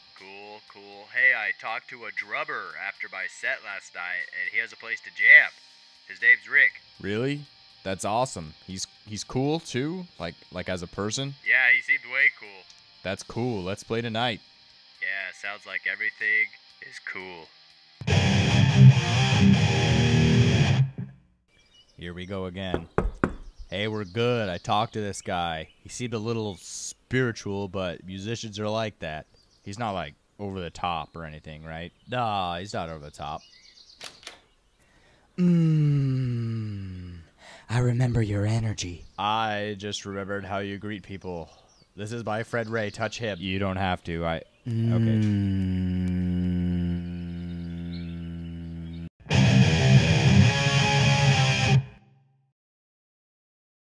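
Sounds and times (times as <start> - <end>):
electric guitar riff: 18.0 - 21.2, 49.2 - 52.1
man humming low and steady: 35.4 - 37.6, 44.6 - 49.1.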